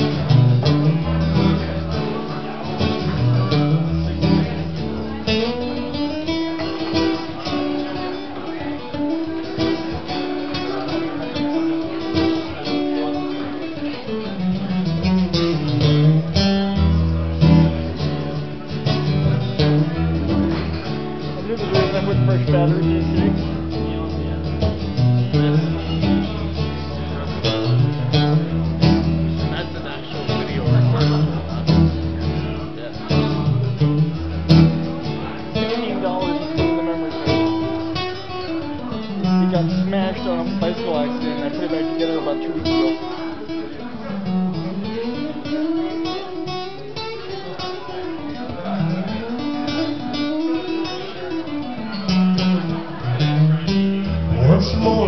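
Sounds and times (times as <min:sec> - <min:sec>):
acoustic guitar strummed and picked: 0:00.0 - 0:55.0.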